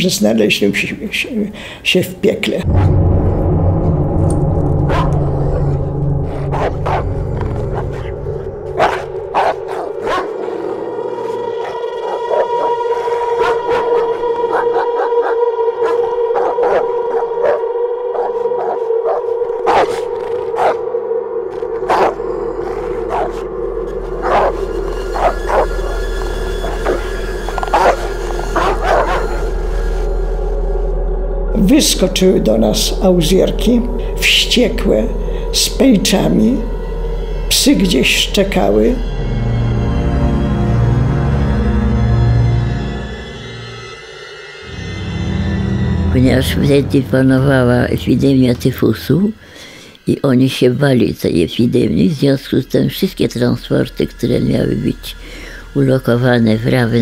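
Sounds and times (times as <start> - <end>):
deep rumble: 2.6 - 49.8
droning tone: 2.6 - 50.0
dog barking: 4.9 - 5.3, 6.4 - 20.8, 21.8 - 23.5, 24.2 - 26.0, 26.6 - 29.4.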